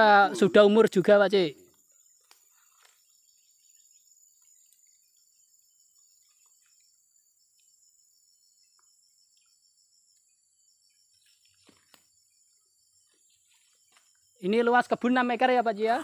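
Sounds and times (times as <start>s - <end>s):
crickets trilling: 0.0s - 16.0s.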